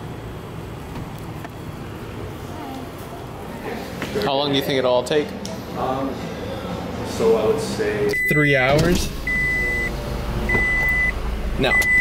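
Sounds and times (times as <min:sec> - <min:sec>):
low steady hum: 0:05.4 - 0:12.0
car warning chime: 0:08.1 - 0:12.0.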